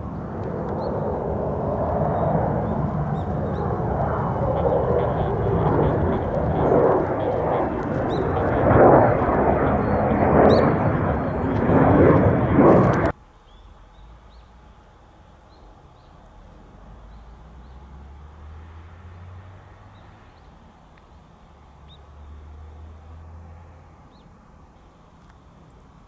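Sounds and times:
jet flying overhead: 0.0 - 13.2.

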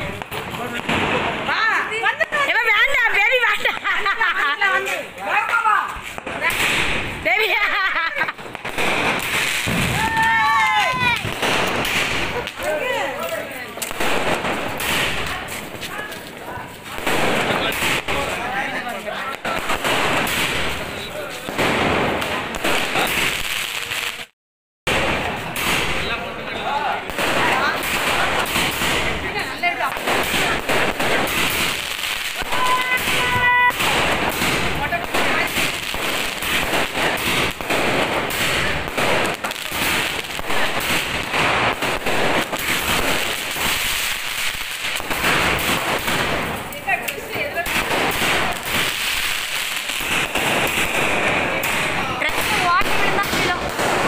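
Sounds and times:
firecrackers crackling and banging: 0.0 - 54.0.

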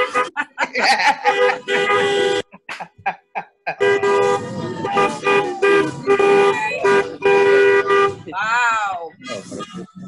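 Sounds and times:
car horns honking: 0.0 - 3.0, 3.7 - 8.3.

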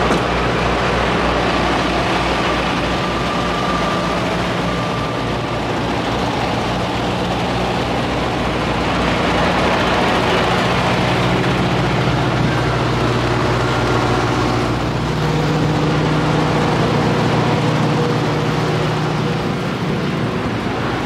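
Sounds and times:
diesel truck engines idling: 0.0 - 21.0.

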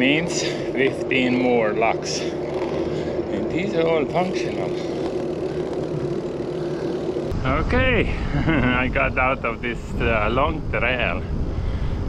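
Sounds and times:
bicycle rolling on pavement: 0.0 - 12.0
steady low hum: 0.0 - 12.0
wind buffeting microphone: 0.0 - 12.0.

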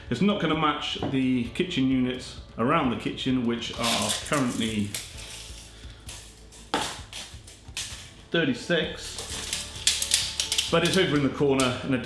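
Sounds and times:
tape measure scraping rattle: 3.7 - 8.1, 9.0 - 11.2
tape measure blade pulled out: 3.8 - 8.0.

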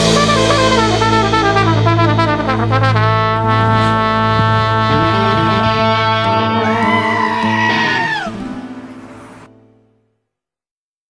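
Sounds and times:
brass band chord: 0.0 - 9.2
goat screaming: 4.4 - 8.5.

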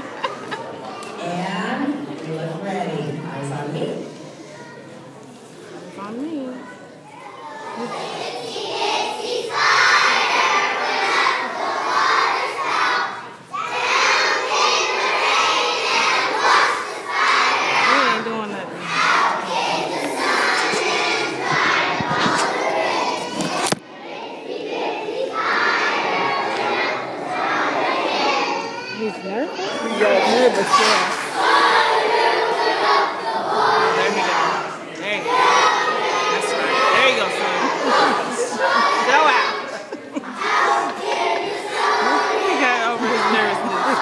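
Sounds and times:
children chanting in unison: 7.4 - 18.2, 18.8 - 28.9, 29.6 - 44.0.

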